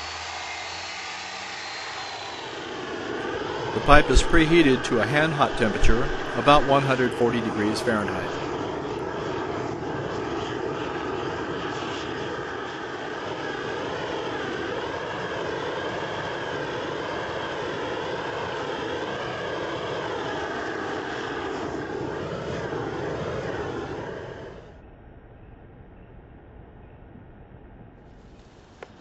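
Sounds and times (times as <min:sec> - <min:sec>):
gas torch rushing: 0:00.0 - 0:08.5.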